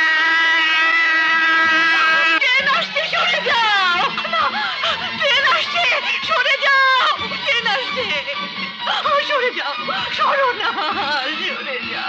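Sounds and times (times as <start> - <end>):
long high-pitched note: 0.0 - 2.5.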